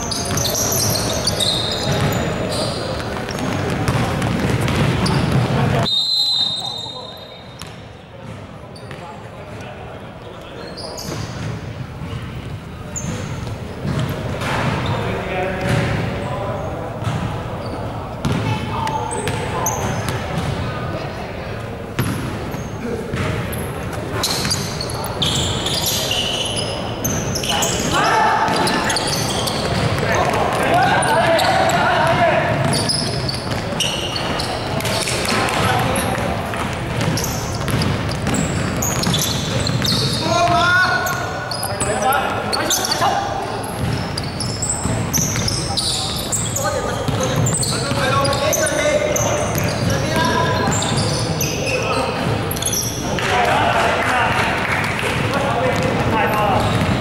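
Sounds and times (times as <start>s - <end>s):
basketball bouncing on wooden court: 1.8s - 2.3s, 2.9s - 5.9s, 7.6s - 9.0s, 11.0s - 14.7s, 15.6s - 16.0s, 17.0s - 17.4s, 18.2s - 20.6s, 22.0s - 22.4s, 23.1s - 23.4s, 28.5s - 41.2s, 43.7s - 45.6s, 47.0s - 48.4s, 55.0s - 57.0s
players shouting: 27.3s - 36.2s.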